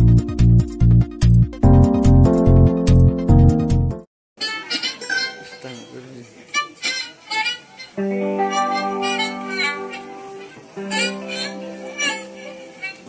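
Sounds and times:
acoustic string band playing: 0:08.0 - 0:12.7.

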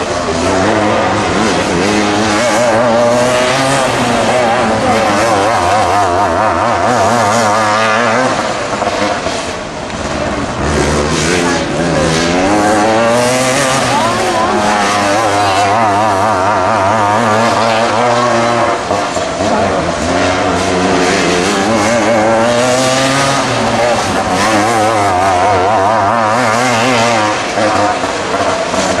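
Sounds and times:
racing kart engines: 0:00.0 - 0:29.0.

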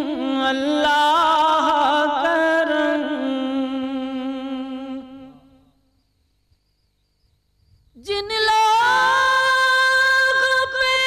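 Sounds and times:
man singing into microphone: 0:08.5 - 0:11.0.

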